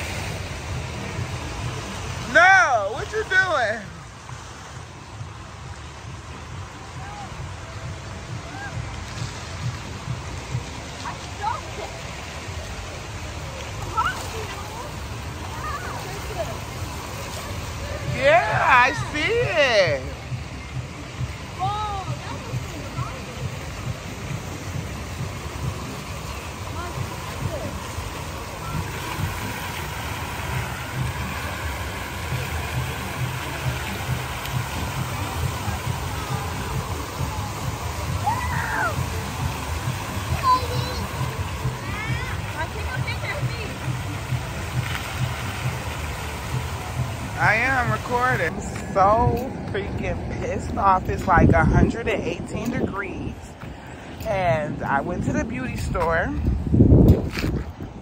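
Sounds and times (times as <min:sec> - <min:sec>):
fountain jets splashing: 0:00.0 - 0:58.0.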